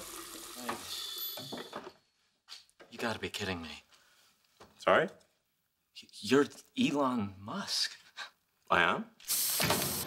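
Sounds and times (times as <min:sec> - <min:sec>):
water spraying into a sink: 0:00.0 - 0:01.4, 0:09.3 - 0:10.0.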